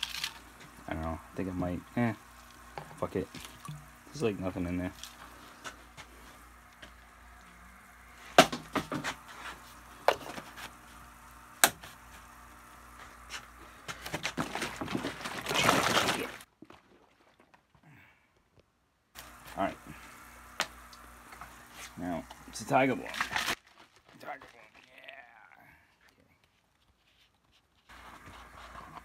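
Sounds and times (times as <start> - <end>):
liquid rushing in plastic jug: 13.8 - 17.8.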